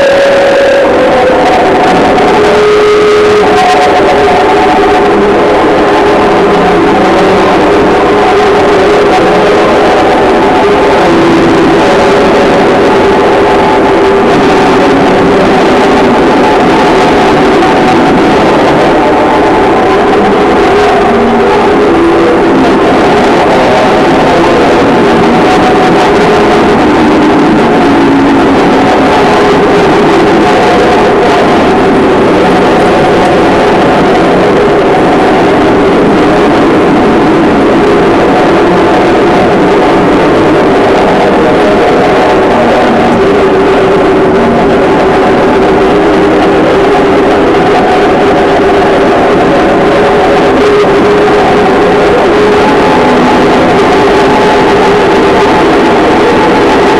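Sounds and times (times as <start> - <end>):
distorted noise drone: 0.0 - 56.9.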